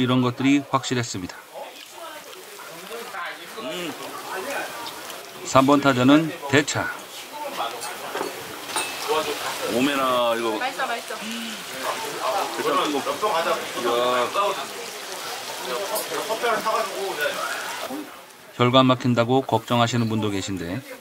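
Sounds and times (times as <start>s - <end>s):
voices talking: 0.0s - 21.0s
meat sizzling on grill pan: 0.5s - 18.3s.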